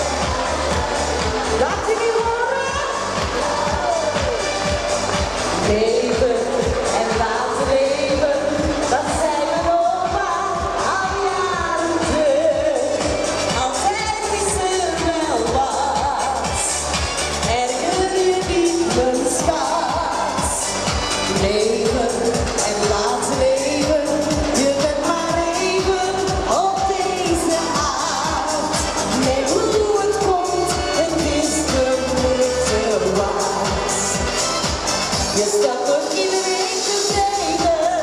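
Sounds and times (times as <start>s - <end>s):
kick drum beat: 0.0s - 19.0s
amplified pop backing music: 0.0s - 38.0s
woman singing into a microphone: 5.6s - 20.7s, 21.3s - 34.2s, 35.2s - 38.0s.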